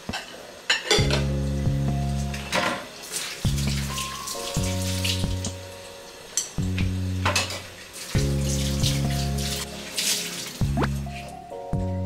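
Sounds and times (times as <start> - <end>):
soft background music: 0.0 - 12.0
water and sponge in sink: 2.1 - 5.7, 6.8 - 11.4.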